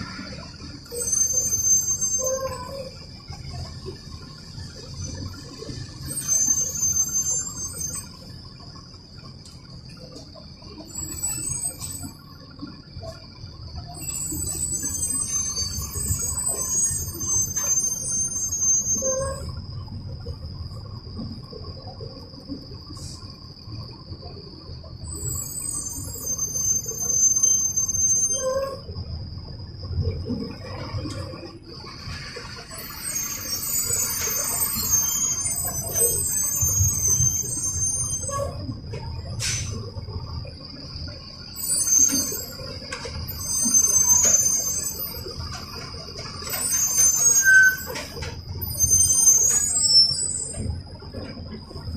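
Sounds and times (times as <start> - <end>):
bus engine and road rumble: 0.0 - 51.9.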